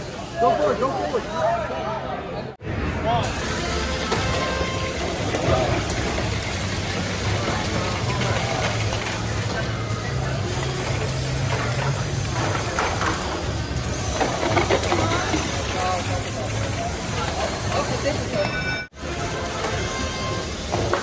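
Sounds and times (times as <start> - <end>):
crowd chatter: 0.0 - 21.0
robot motors whirring: 3.2 - 18.2.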